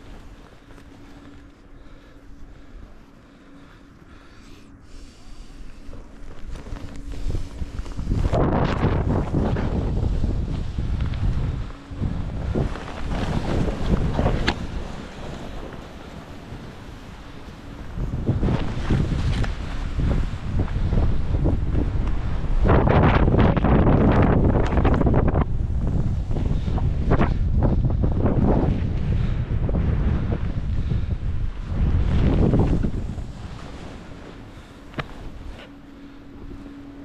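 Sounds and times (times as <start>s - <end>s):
skis scraping through snow: 0.0s - 3.5s, 4.9s - 36.7s
wind rushing over microphone: 5.4s - 37.0s.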